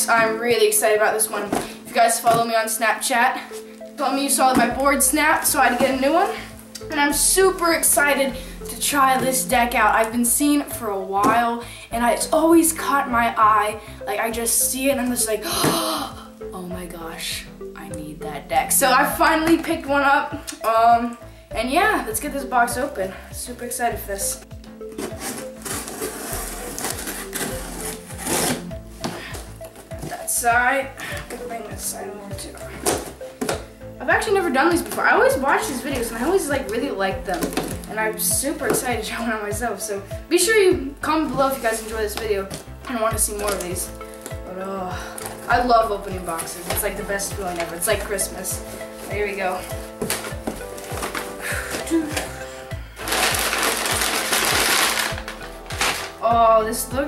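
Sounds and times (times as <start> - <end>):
background music with steady beat: 0.0 - 57.0
cardboard and tape crinkling: 4.1 - 6.5, 24.8 - 31.9, 32.6 - 37.9, 41.3 - 56.3
packing tape cut and scraped: 24.9 - 29.2, 53.0 - 56.2
tape tearing: 24.9 - 30.2, 53.0 - 56.2.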